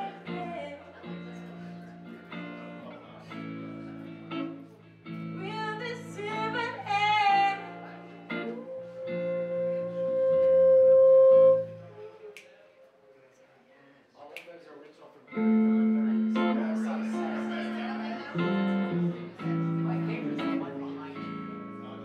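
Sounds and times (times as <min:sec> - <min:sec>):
woman singing: 0:00.0 - 0:00.9, 0:05.4 - 0:07.8
electric guitar: 0:00.0 - 0:12.4, 0:15.3 - 0:22.0
electric bass: 0:15.6 - 0:22.0.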